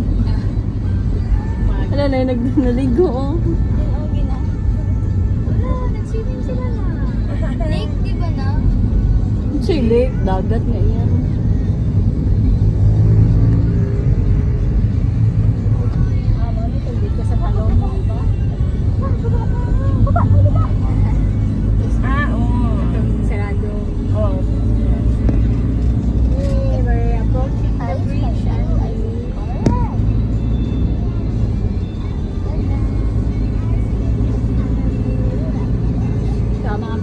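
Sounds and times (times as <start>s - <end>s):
vehicle engine and road rumble: 0.0s - 37.0s
faint voices: 14.8s - 37.0s.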